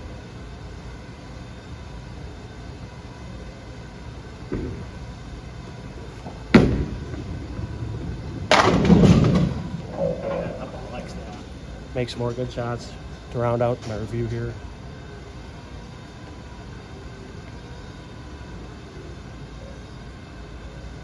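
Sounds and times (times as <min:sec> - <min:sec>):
bowling alley hum: 0:00.0 - 0:21.0
bowling ball rolling: 0:06.3 - 0:11.5
bowling pins clattering: 0:06.5 - 0:11.4
bowling ball thud on lane: 0:08.4 - 0:10.6.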